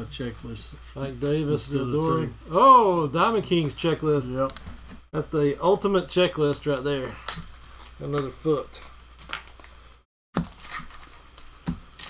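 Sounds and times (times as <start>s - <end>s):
wax paper wrapper tearing and crinkling: 6.4s - 12.0s.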